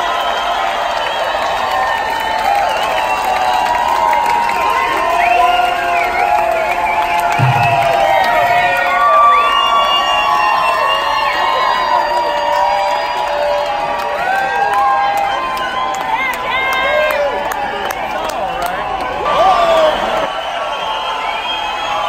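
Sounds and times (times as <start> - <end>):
crowd cheering and whooping: 0.0 - 22.0.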